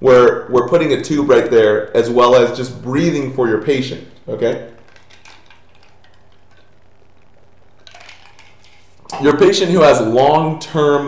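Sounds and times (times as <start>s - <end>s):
low electrical hum: 0.0s - 11.0s
small clicks: 0.1s - 9.4s.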